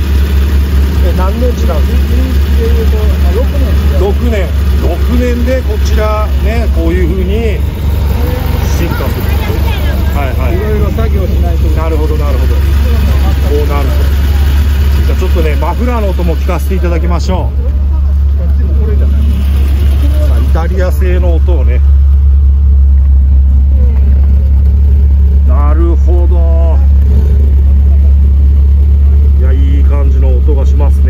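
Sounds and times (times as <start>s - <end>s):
car engine idling: 0.0s - 31.0s
people talking: 0.9s - 21.9s, 23.6s - 24.6s, 25.4s - 28.4s, 29.3s - 31.0s.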